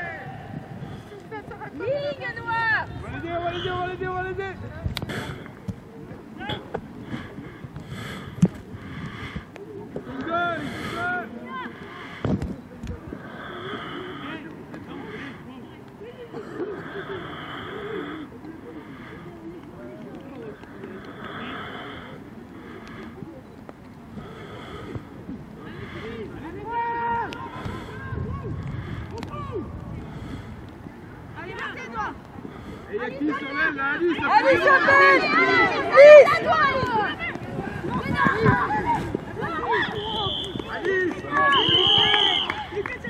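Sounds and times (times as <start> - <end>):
voices shouting and calling: 0.0 - 23.4, 24.0 - 43.0.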